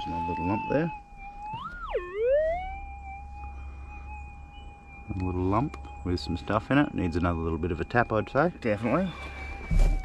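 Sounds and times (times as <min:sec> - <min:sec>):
metal detector threshold tone: 0:00.0 - 0:10.0
metal detector target signal: 0:05.0 - 0:10.0.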